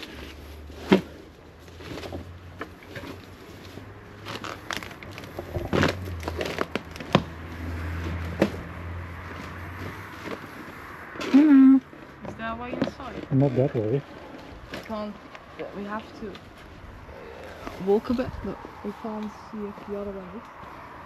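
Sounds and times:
twigs crackling and snapping: 0:00.0 - 0:11.2
leaves rustling underfoot: 0:00.0 - 0:21.0.

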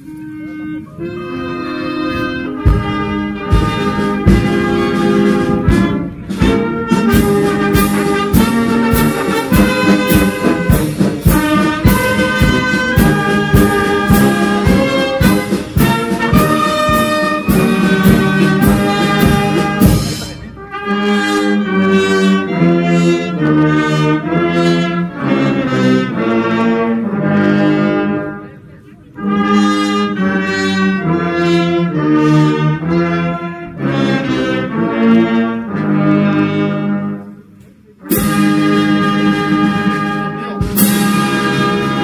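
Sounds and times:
brass band playing: 0:00.0 - 0:42.0.

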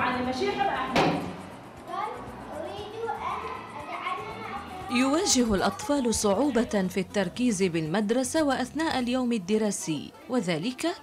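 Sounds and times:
murmur of schoolboys: 0:01.5 - 0:06.9.

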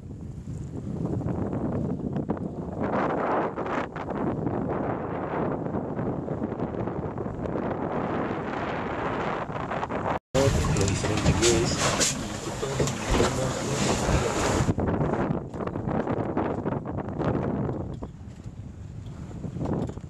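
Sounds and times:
water rushing past hull: 0:00.0 - 0:15.6
wind buffeting microphone: 0:00.0 - 0:20.0
faint voices: 0:10.4 - 0:14.4.

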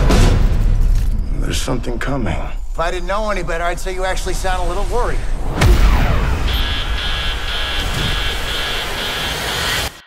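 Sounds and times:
aircraft-like noise: 0:04.7 - 0:10.0
alarm beeping: 0:05.6 - 0:10.0.

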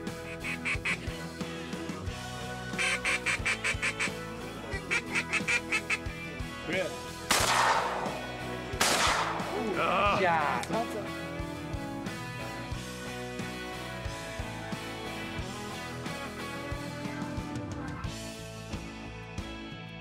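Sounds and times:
background music: 0:00.0 - 0:20.0
rapid duck quacking: 0:00.1 - 0:01.2, 0:02.8 - 0:06.2
loud shotgun shots: 0:07.3 - 0:09.8.

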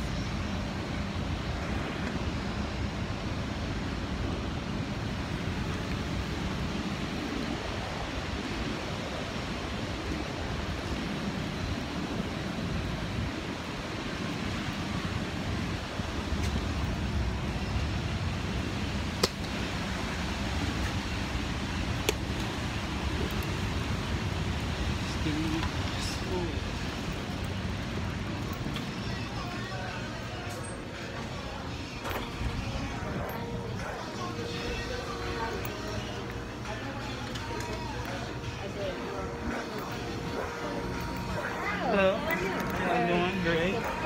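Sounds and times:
wind rumbling on microphone: 0:00.0 - 0:30.2
city street noise: 0:00.0 - 0:44.0.

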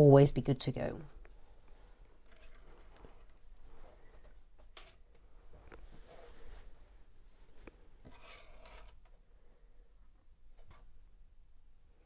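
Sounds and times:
paintbrushes rustling: 0:00.8 - 0:09.2.

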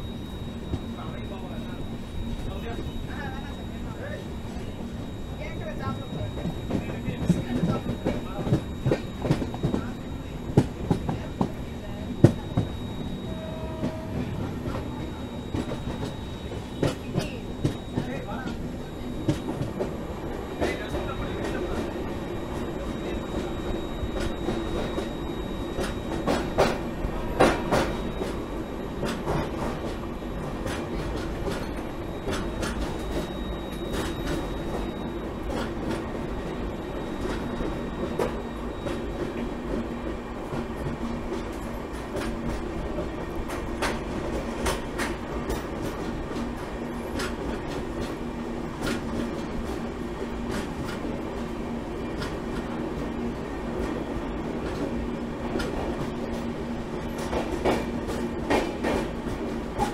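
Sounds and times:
train rumble: 0:00.0 - 0:59.9.

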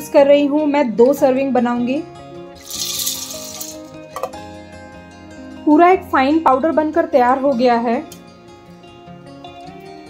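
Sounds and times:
background music: 0:00.0 - 0:10.0
chickpeas rattling in metal jar: 0:02.6 - 0:04.0.

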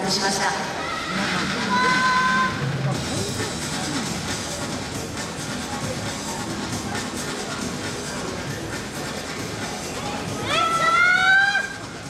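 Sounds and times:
crowd noise: 0:00.0 - 0:12.0
music: 0:00.0 - 0:12.0.

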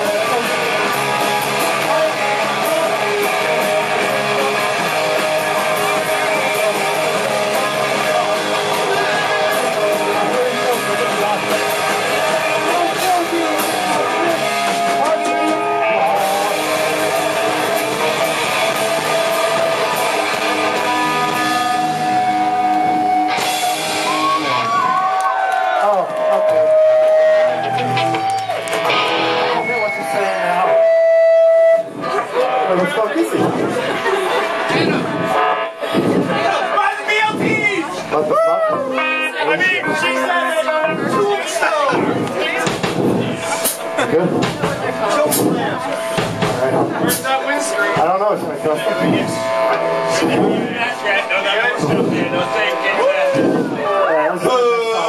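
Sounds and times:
electric guitar bending notes: 0:00.0 - 0:25.1, 0:25.9 - 0:55.0
live rock band playing: 0:00.0 - 0:55.0.

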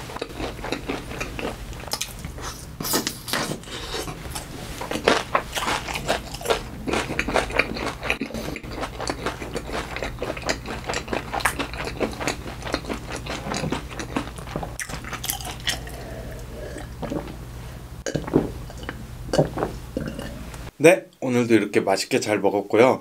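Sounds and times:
chewing with wet crunches: 0:00.1 - 0:17.3.

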